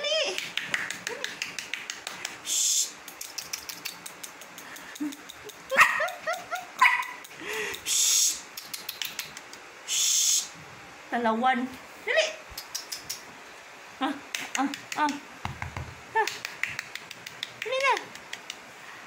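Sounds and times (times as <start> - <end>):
puppy yipping and whining: 5.7 - 7.3
person shushing: 7.4 - 8.5, 9.9 - 10.5
paws scrabbling on cushion: 15.4 - 16.0.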